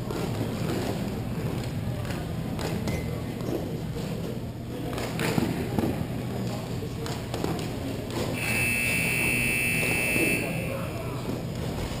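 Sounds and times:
players' voices: 1.3 - 11.5
arena buzzer high electronic tone: 8.4 - 11.0.

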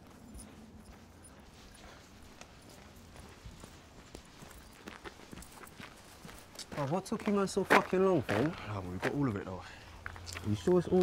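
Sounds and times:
faint footsteps: 0.0 - 11.0
man speaking: 6.7 - 9.7, 10.4 - 11.0.

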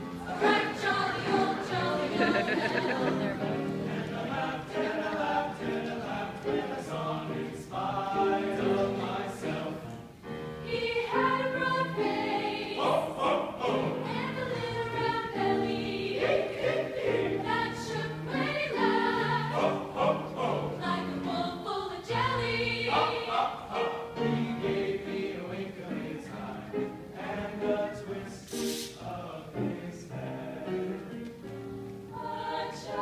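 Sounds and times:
grand piano: 0.0 - 33.0
mixed choir singing: 0.0 - 33.0.

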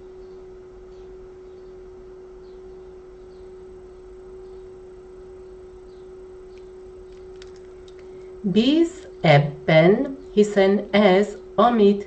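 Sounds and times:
faint low background noise: 0.0 - 12.0
steady pure tone: 0.0 - 12.0.

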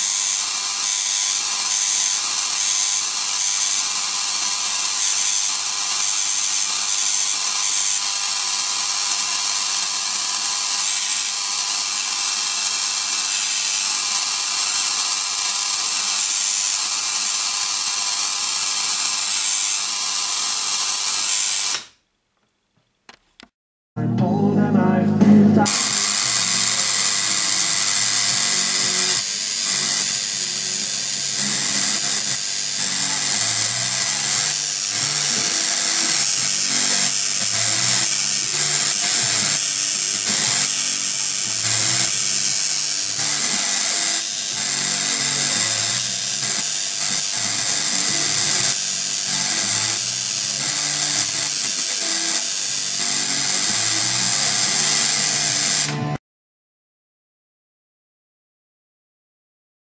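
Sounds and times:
tesla coil spark buzzing: 0.0 - 22.0, 25.7 - 56.2.

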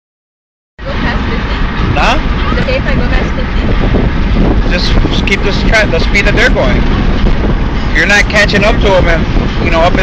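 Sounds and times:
car cabin road and engine noise: 0.8 - 10.0.

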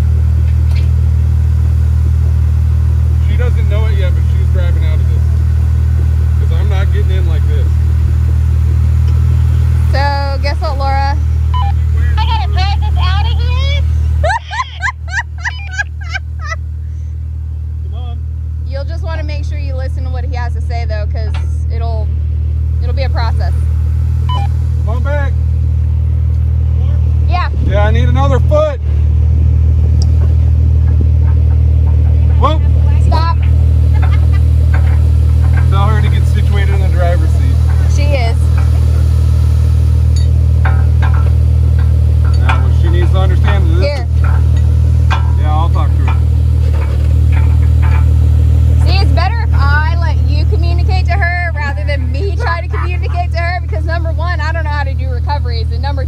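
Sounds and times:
car engine idling: 0.0 - 56.0
indistinct voices: 9.0 - 16.4, 17.8 - 22.2, 22.8 - 25.4, 26.3 - 56.0.

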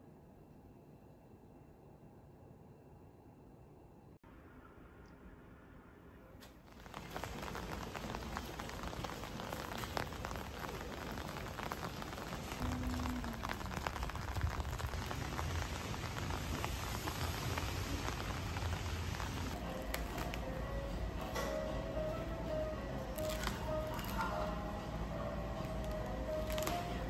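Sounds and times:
steady rain falling: 6.6 - 27.0.

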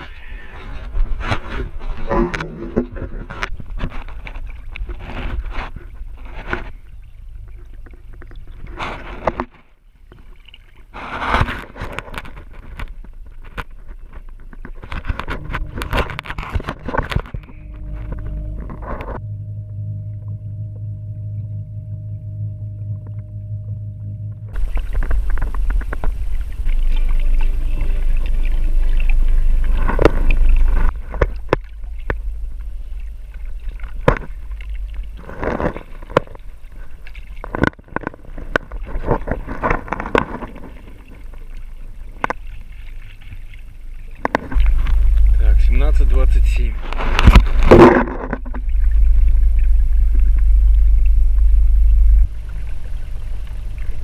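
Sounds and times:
rush of water and wind: 0.0 - 19.2
water splashing: 0.0 - 54.0.

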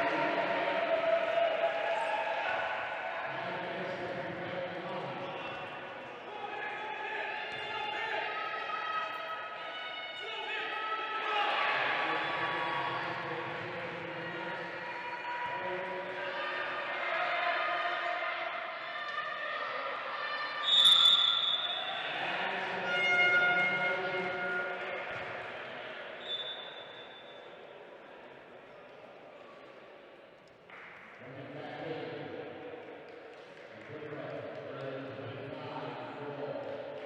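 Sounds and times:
referee's whistle: 20.6 - 22.0, 26.2 - 27.5.

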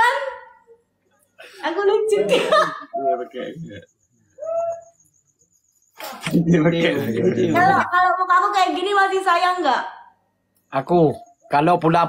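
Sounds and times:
rapidly pulsing high chirping: 1.2 - 9.7, 10.6 - 12.0.

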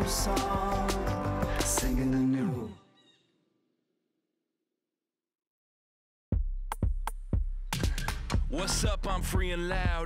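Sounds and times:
song: 0.0 - 2.7.

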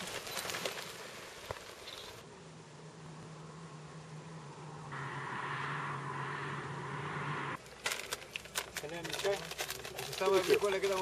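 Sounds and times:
bike tyres hissing on gravel: 0.0 - 2.2
low hum: 2.3 - 7.6
clicks and knocks of bike gear: 7.7 - 11.0.

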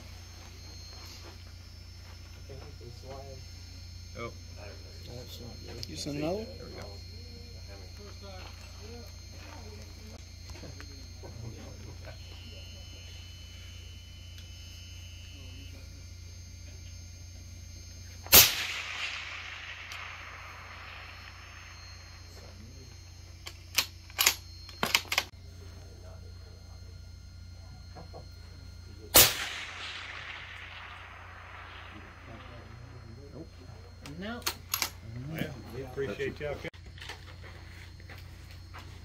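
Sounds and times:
rifle shot with echo: 18.2 - 22.0, 29.1 - 33.1.

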